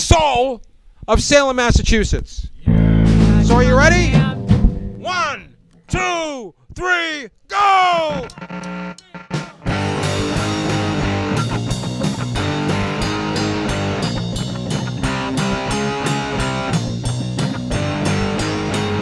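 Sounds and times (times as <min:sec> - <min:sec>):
rock band with fast beat: 0:02.7 - 0:05.1, 0:08.2 - 0:19.0.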